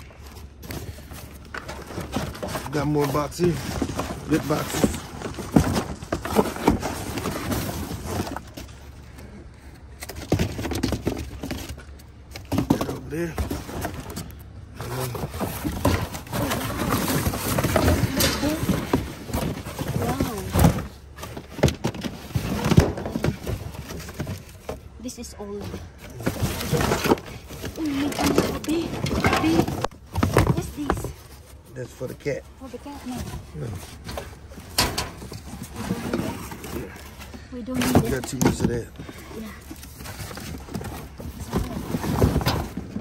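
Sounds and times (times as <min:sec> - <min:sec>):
cardboard boxes scraping and knocking: 0:00.0 - 0:43.0.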